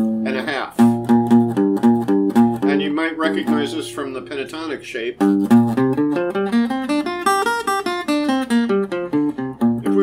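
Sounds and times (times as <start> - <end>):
acoustic guitar playing a scale: 0.0 - 10.0.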